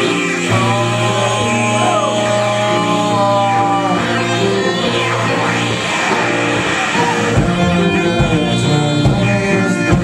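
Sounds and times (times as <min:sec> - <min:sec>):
electric guitars and bass chords: 0:00.0 - 0:10.0.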